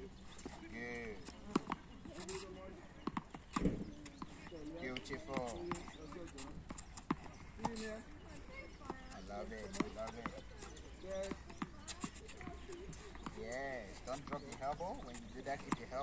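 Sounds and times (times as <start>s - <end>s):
tennis balls hit with rackets: 0.0s - 16.0s
balls bouncing on hard court: 0.4s - 8.0s, 8.6s - 16.0s.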